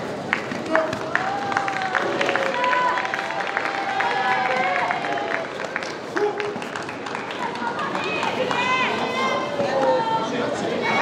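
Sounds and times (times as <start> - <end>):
crowd murmur: 0.0 - 11.0
spectators shouting: 0.9 - 5.6.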